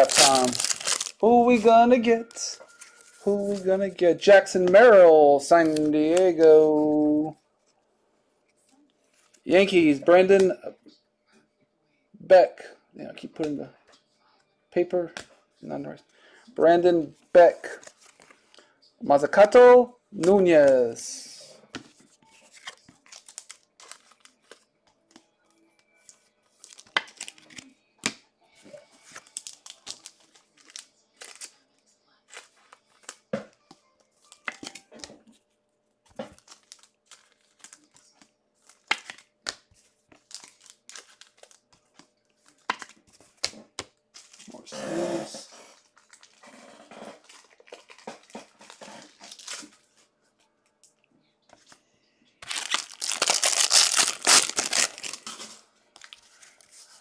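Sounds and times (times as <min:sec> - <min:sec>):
foil wrappers crinkling and tearing: 0:00.0 - 0:01.7, 0:22.4 - 0:24.7, 0:26.6 - 0:27.6, 0:29.0 - 0:31.6, 0:36.3 - 0:43.5, 0:45.8 - 0:46.4, 0:47.2 - 0:49.9, 0:52.4 - 0:56.8
loud wrapper rustle: 0:00.0 - 0:01.7, 0:52.4 - 0:56.7.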